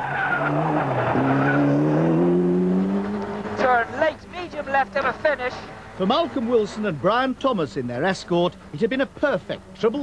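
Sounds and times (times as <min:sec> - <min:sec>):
rally car engine accelerating: 0:00.0 - 0:04.0.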